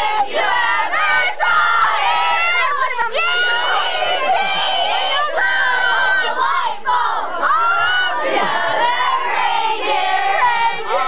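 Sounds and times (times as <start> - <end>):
children shouting and cheering: 0.0 - 11.0.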